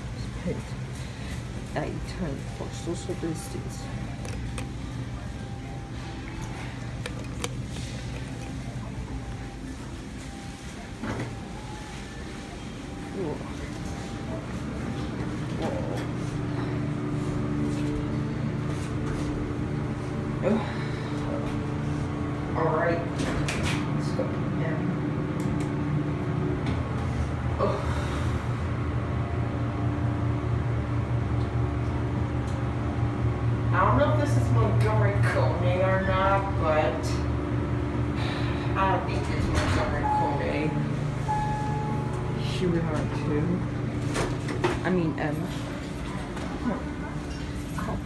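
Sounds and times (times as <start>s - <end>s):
steady low hum: 0.0s - 48.0s
elevator door sliding open: 39.1s - 44.8s.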